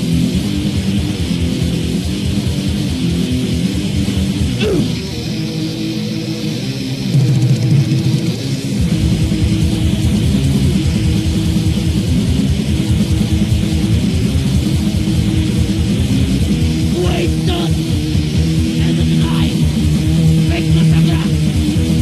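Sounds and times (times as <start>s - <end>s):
distorted electric guitar riff: 0.0s - 22.0s
fast pounding drums and bass: 0.0s - 22.0s.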